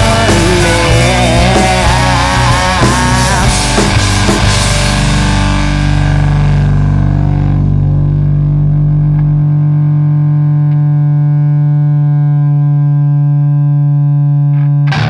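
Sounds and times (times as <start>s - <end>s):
bass guitar: 0.0s - 15.0s
distorted electric guitar chord: 0.0s - 15.0s.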